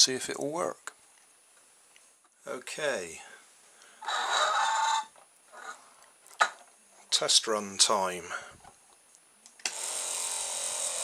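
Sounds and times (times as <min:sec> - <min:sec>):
small electric motor whirring: 0:09.7 - 0:11.0.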